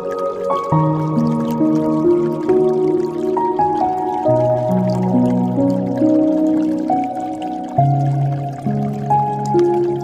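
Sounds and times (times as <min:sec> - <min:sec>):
dripping trickling water: 0:00.0 - 0:10.0
slow piano music: 0:00.0 - 0:10.0.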